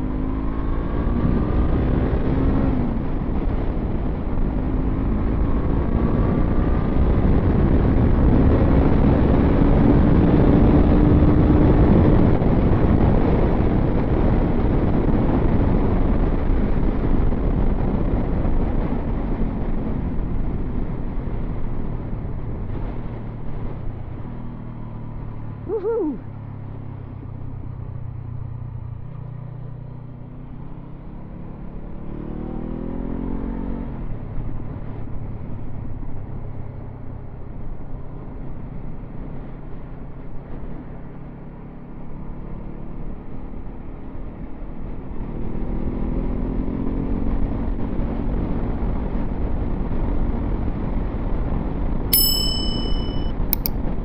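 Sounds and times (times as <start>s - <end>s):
motorcycle engine accelerating: 0.0s - 36.4s
wind and road noise: 0.0s - 54.0s
short high chime tones: 52.2s - 53.7s
wavering tone: 52.2s - 53.7s.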